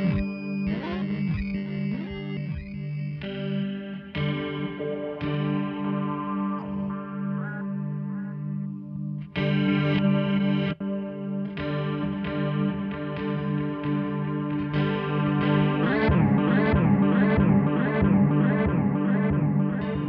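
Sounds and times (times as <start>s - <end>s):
distorted electric guitar chords: 0.0s - 20.0s.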